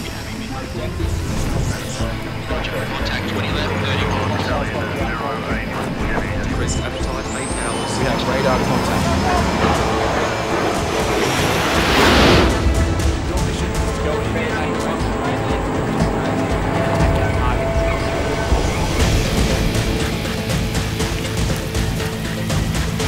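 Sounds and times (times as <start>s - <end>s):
loud whoosh: 0.0s - 22.2s
aircraft noise: 0.0s - 23.0s
indistinct voices: 0.0s - 23.0s
music: 0.0s - 23.0s
high rising whistle: 6.2s - 22.0s.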